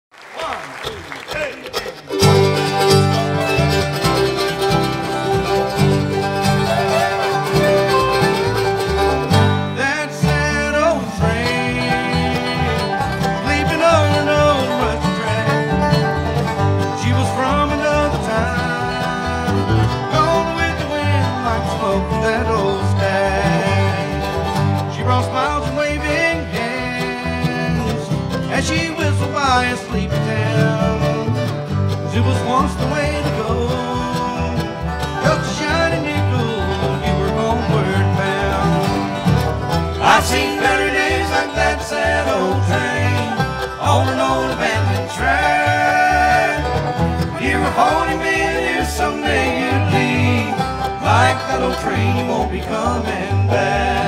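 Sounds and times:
bluegrass band playing: 0.4s - 54.0s.

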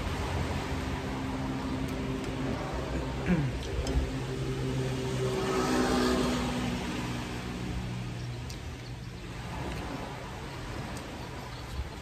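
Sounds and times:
vehicle passing: 0.0s - 11.4s.

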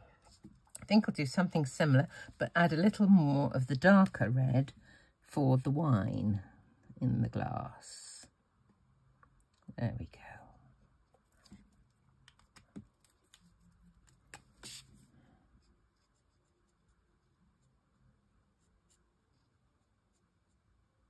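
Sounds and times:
marker strokes on cardstock: 13.2s - 15.0s, 15.6s - 17.9s.

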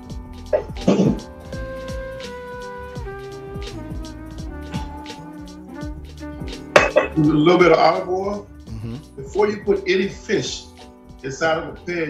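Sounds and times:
background music with beat: 0.0s - 12.0s
loud voice: 8.7s - 9.0s.

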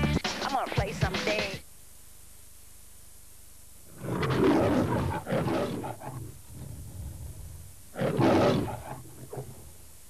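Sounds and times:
lion roaring: 3.9s - 9.8s.

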